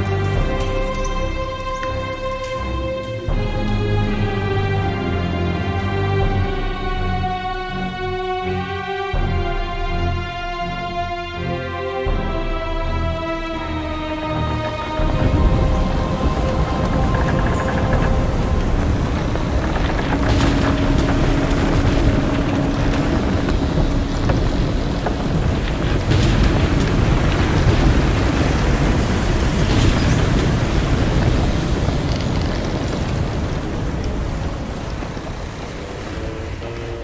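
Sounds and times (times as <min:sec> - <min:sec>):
music: 0:00.0 - 0:37.0
dense rumble with hiss: 0:12.4 - 0:37.0.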